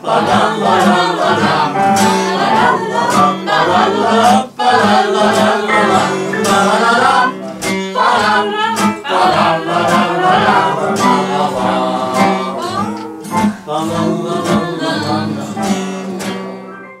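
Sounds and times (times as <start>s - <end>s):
group singing: 0.0s - 16.7s
strummed guitars: 0.0s - 16.9s.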